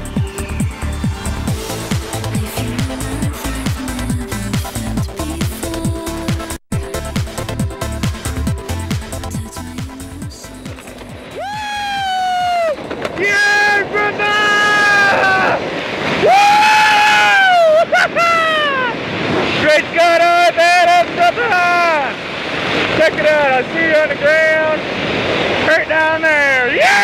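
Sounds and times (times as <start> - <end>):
rushing wind noise: 0.0 - 5.1, 10.8 - 27.0
electronic dance music: 0.0 - 11.4
person whooping and shouting: 11.3 - 15.6, 16.2 - 19.0.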